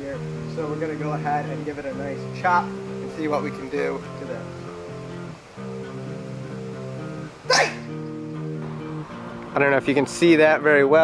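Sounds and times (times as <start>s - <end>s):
guitar music: 0.0s - 11.0s.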